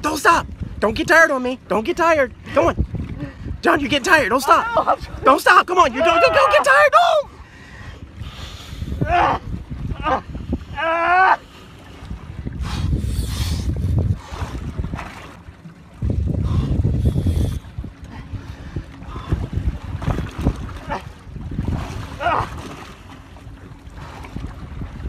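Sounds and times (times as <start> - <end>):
water lapping at hull: 0.0 - 25.0
wind buffeting microphone: 0.0 - 25.0.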